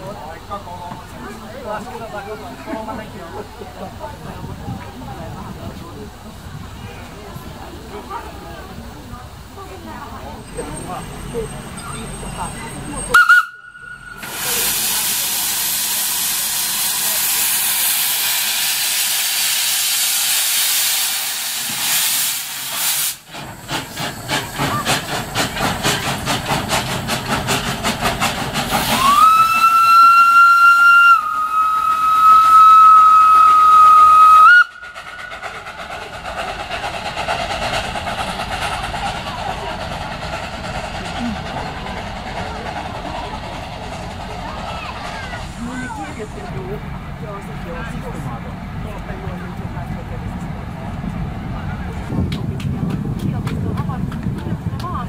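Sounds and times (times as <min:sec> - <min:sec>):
locomotive exhaust chuffs: 0:00.0 - 0:55.0
steam hissing: 0:02.0 - 0:48.5
steam whistle blast: 0:13.1 - 0:14.6, 0:28.9 - 0:34.9.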